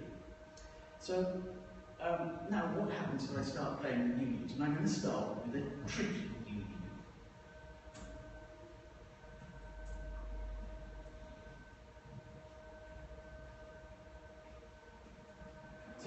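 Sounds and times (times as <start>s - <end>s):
faint high-pitched hum: 0.0s - 16.0s.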